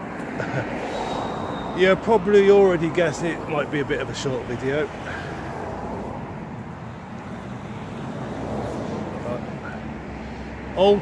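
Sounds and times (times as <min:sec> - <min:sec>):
traffic hiss and rumble: 0:00.0 - 0:11.0.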